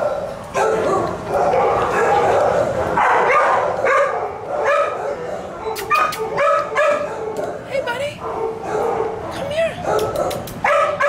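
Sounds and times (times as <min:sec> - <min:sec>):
dogs barking and yipping: 0:00.0 - 0:11.0.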